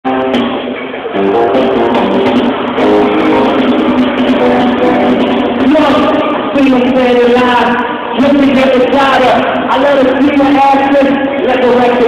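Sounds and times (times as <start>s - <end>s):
loud live concert music: 0.0s - 12.0s.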